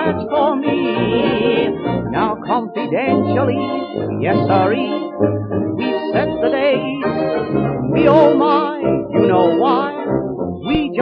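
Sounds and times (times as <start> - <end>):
man singing with wide vibrato: 0.0 - 5.1, 5.8 - 11.0
dance band playing: 0.0 - 11.0.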